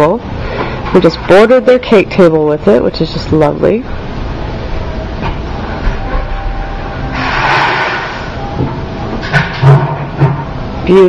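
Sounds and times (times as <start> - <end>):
low rumbling background noise: 0.0 - 11.0
rush of noise: 6.9 - 8.7.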